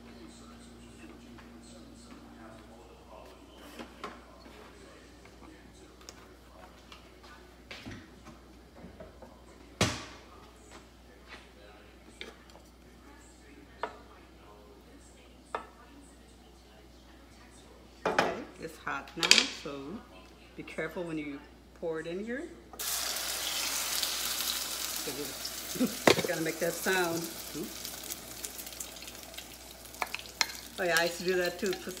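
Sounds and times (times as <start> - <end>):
kitchenware knocks and clinks: 26.0 - 26.4.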